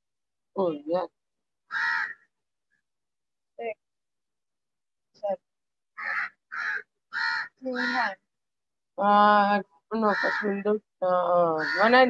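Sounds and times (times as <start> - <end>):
crow cawing: 1.7 - 2.3, 6.0 - 8.1, 10.0 - 10.6, 11.4 - 12.0.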